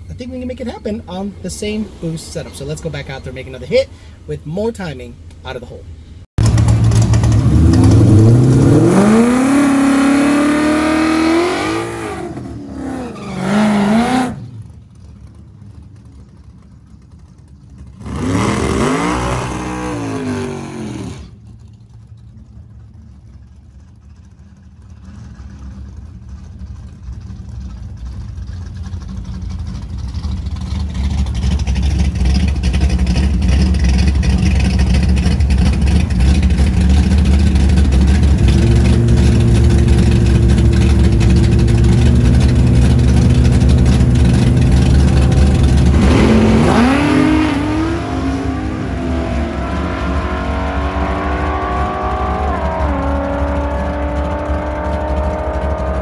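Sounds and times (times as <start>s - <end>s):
drag car engine revving: 6.4s - 56.0s.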